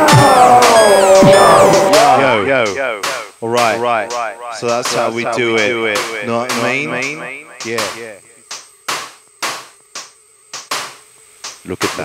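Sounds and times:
hissy electronic noise hits: 0.0 - 12.0.

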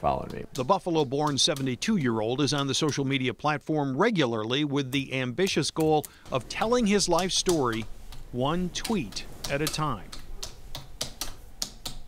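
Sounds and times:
computer keyboard typing: 0.2 - 3.1, 4.8 - 12.0.

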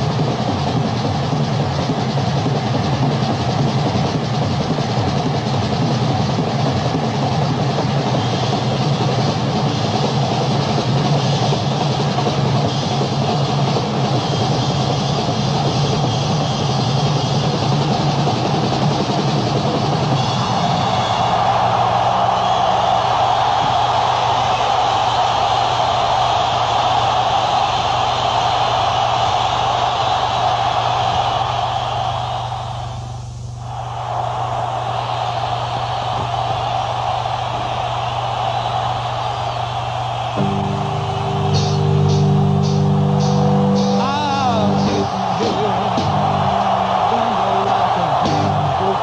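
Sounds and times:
cymbal strokes: 40.4 - 45.2
bending electric guitar line: 40.4 - 49.0.

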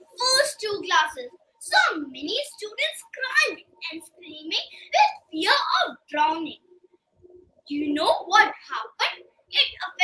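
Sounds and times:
girl speaking: 0.0 - 6.8, 7.6 - 10.0.

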